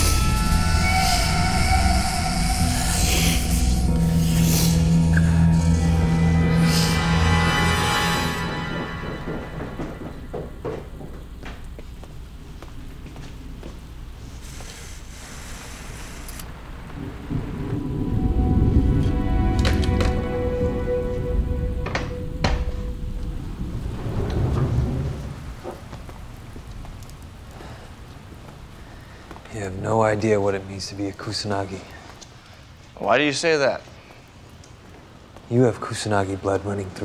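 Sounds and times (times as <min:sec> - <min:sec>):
quiet music score: 0:00.0 - 0:12.4, 0:17.0 - 0:25.6
steady rain: 0:00.0 - 0:37.0
rolling thunder: 0:03.8 - 0:11.4, 0:16.5 - 0:28.1
sharp thunder cracks: 0:16.8 - 0:25.9.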